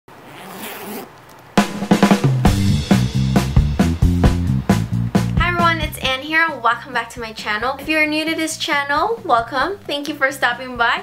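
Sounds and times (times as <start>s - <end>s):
metal zipper being pulled open: 0.1s - 1.4s
music with drums: 1.6s - 11.0s.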